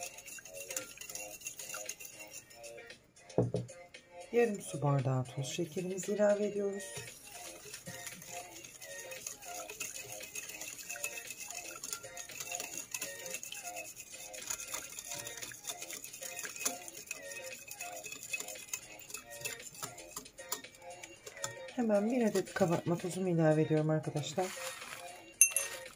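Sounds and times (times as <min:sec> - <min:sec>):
whisk beating batter in bowl: 0:00.0 - 0:03.0, 0:04.4 - 0:25.9.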